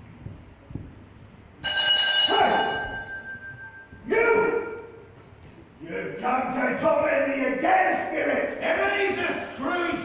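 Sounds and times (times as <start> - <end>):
bell-like chime ringing: 1.6 - 3.9.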